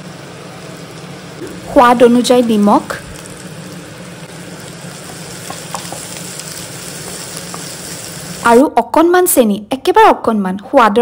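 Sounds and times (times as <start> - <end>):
vegetables sizzling in a pan: 0.0 - 9.6.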